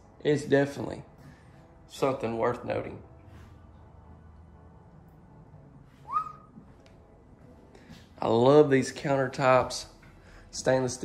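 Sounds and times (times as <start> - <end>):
whistle sliding up in pitch: 6.0 - 6.5.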